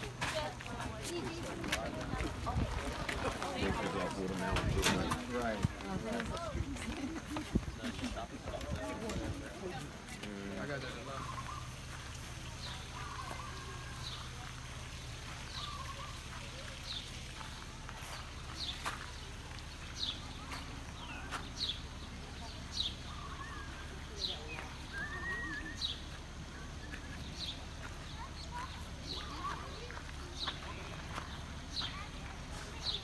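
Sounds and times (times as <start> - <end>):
distant voices: 0.0 - 33.0
bird chirping: 10.9 - 14.3.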